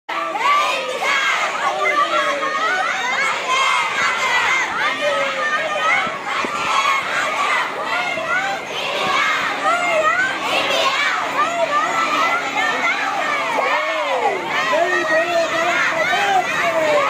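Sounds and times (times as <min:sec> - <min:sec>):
girls shouting together: 0:00.2 - 0:17.0.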